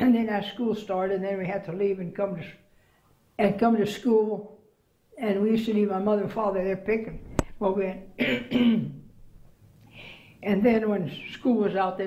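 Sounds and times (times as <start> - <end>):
woman clearing her throat: 8.2 - 9.0.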